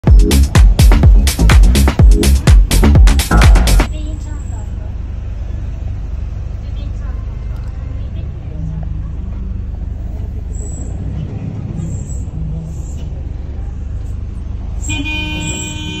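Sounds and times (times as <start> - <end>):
bus engine and road rumble: 0.0 - 16.0
vehicle horn: 14.8 - 16.0.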